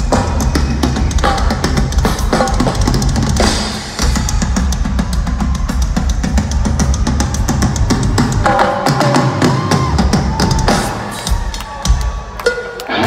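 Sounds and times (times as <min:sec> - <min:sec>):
rock drums playing: 0:00.0 - 0:13.0.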